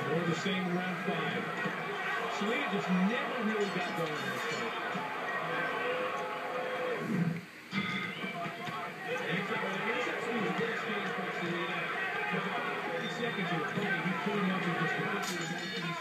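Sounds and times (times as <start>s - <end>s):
indistinct television voices: 0.0s - 16.0s.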